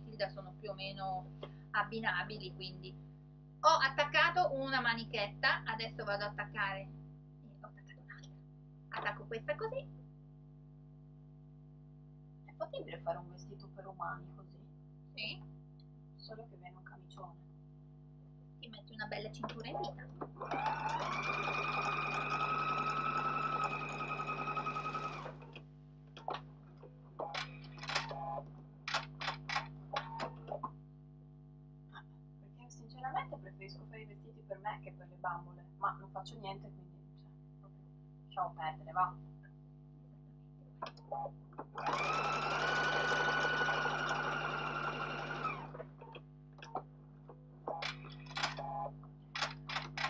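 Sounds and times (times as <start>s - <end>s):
sewing machine stitching: 20.4s - 25.6s, 41.7s - 46.8s.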